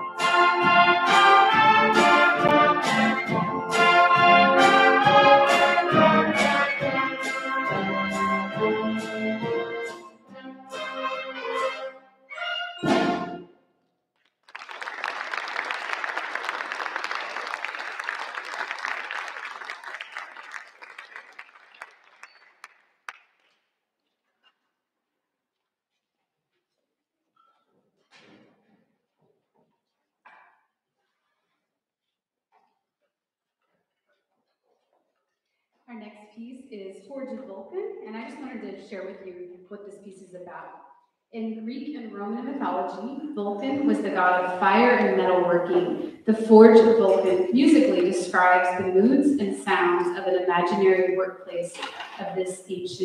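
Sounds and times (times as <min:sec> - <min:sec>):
concert band playing: 0:00.0 - 0:11.8, 0:12.4 - 0:13.4
audience applauding: 0:14.4 - 0:23.6.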